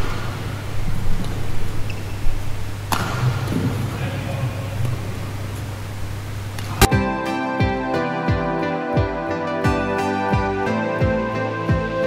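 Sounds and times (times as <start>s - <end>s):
racket striking shuttlecock: 2.9s - 3.5s.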